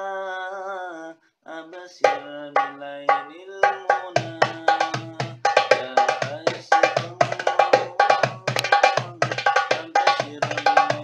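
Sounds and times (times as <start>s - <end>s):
goblet drum played by hand: 2.0s - 11.0s.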